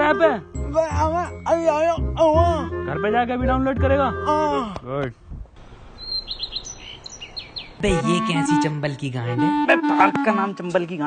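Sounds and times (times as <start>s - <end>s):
small birds chirping: 5.7s - 8.8s.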